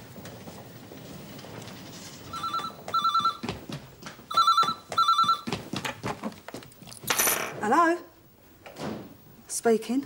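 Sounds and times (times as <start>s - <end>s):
electronic telephone ringing: 2.3s - 3.4s, 4.3s - 5.5s.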